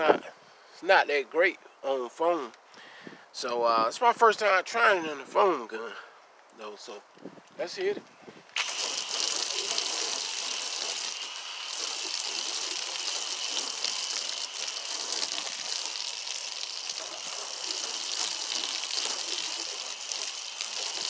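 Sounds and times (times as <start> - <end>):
water spraying on car: 8.6 - 21.0.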